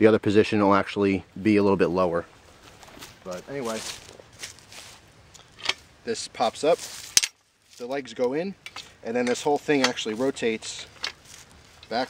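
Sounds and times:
footsteps on grass and dry leaves: 2.3s - 8.2s, 8.9s - 12.0s.

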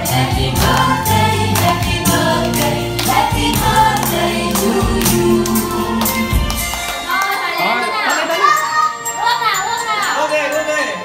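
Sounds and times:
group singing: 0.0s - 6.9s
music with a steady beat: 0.0s - 7.1s
hands clapping: 0.5s - 7.6s.

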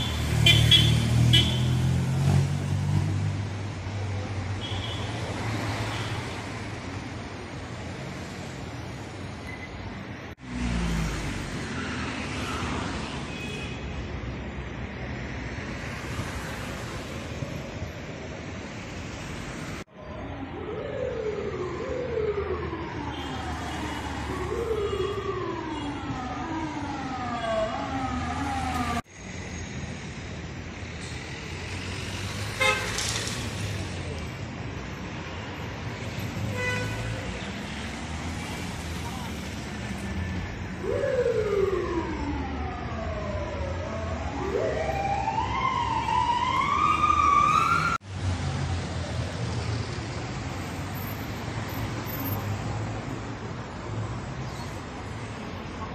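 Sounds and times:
street traffic: 0.0s - 55.9s
siren wailing: 20.0s - 29.0s, 40.7s - 48.0s.

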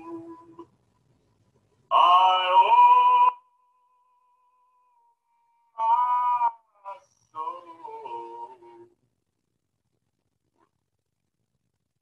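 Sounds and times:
person singing folk song: 5.6s - 8.9s.

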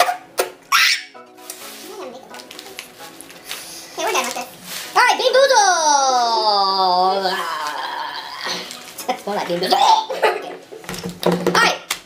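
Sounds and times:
faint background music: 0.0s - 12.0s
non-word vocal reactions: 5.5s - 8.9s.

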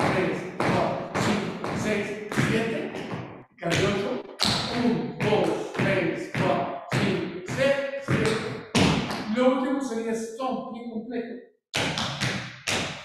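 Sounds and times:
tap shoes on hard floor: 0.0s - 9.2s
person speaking: 0.0s - 11.4s.

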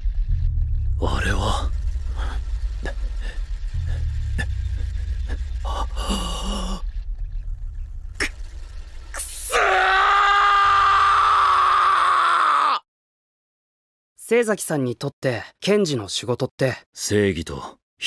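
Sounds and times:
sharp clicks and glitch hits: 0.0s - 9.4s
low rumbling drone: 0.0s - 11.4s.

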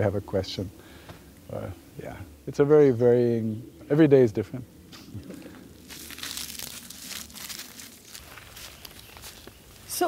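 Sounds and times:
crunching and rustling: 5.0s - 10.0s.

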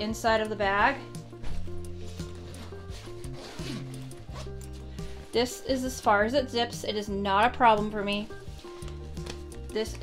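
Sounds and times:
background music with low notes: 0.0s - 10.0s
zipper being pulled open: 1.4s - 5.4s.

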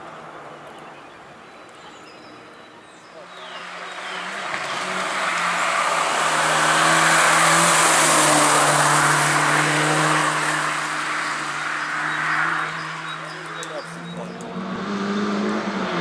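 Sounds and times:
tyre and road noise: 0.0s - 16.0s
rally car engine passing: 3.2s - 16.0s.

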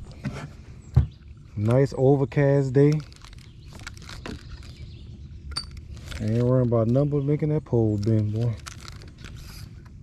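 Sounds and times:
fishing reel clicks and rustles: 1.6s - 4.8s, 7.7s - 10.0s.

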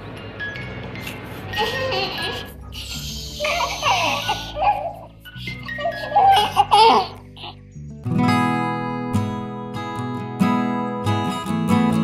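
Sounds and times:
soft background music: 0.0s - 12.0s
newborn baby crying: 1.5s - 7.6s.

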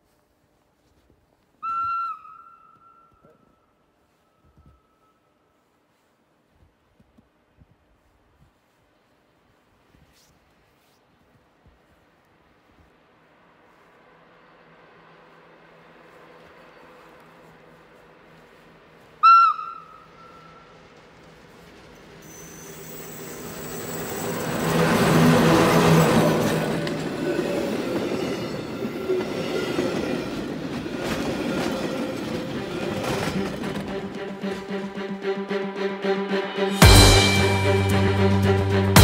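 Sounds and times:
train horn blast: 33.2s - 39.0s.

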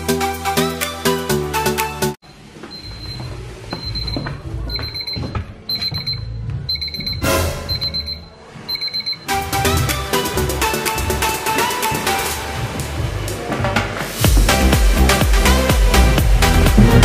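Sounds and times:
background music: 0.0s - 2.2s, 7.2s - 17.0s
timer alarm beeping: 2.7s - 9.4s.

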